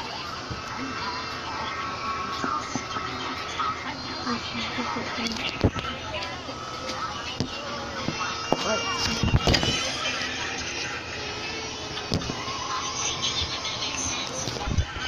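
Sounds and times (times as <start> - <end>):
indistinct voices: 0.0 - 15.0.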